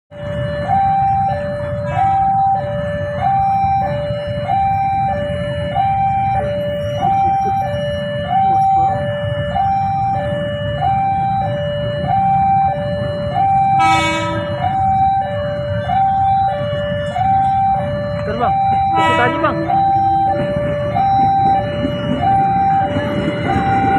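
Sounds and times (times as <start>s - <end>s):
two-tone level crossing alarm: 0.1s - 23.9s.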